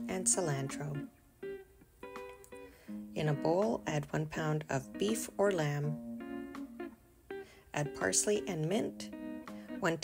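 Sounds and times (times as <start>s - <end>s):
plucked guitar notes: 0.0s - 10.0s.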